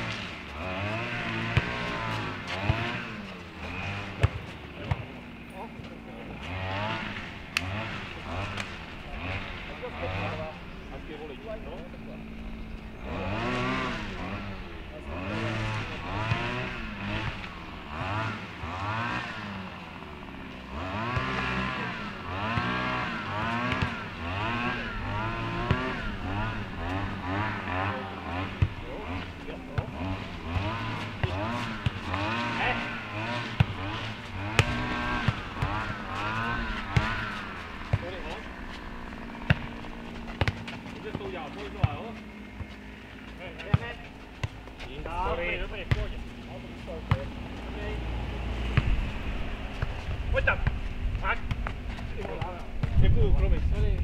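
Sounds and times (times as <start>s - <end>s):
engine revving: 0.0s - 54.0s
pulsing low hum: 0.0s - 54.0s.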